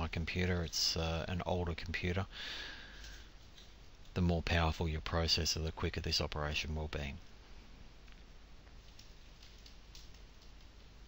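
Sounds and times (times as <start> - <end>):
faint clicks: 8.0 - 11.0.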